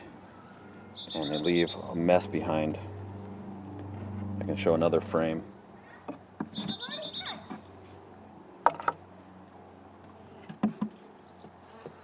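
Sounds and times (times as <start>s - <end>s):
high pulsed chirping: 0.0s - 2.4s
sharp wooden knocks: 10.5s - 11.0s.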